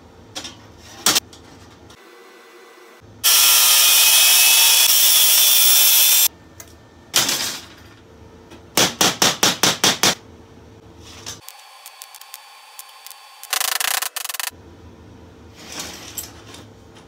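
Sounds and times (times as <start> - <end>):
angle grinder cutting wire mesh: 3.2 - 6.3.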